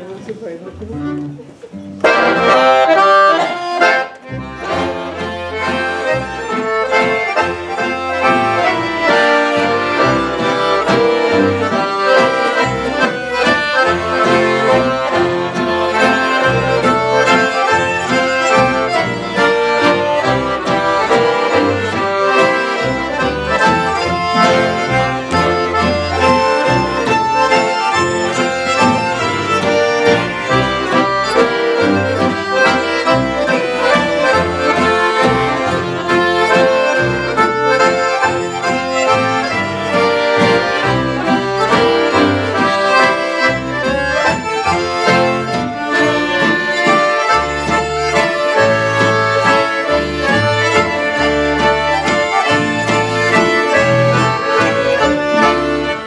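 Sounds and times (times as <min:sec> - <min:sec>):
accordions: 0:00.0 - 0:56.0
fiddle: 0:00.0 - 0:56.0
guitar: 0:00.0 - 0:56.0
pulsing double bass: 0:04.3 - 0:56.0.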